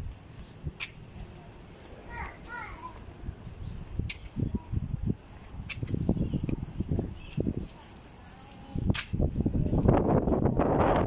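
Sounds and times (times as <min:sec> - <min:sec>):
young child calling out: 0:02.1 - 0:03.1.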